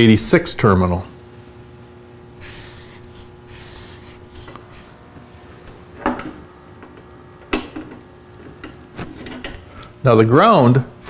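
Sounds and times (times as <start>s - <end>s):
marker scratching on paper: 2.4s - 5.0s.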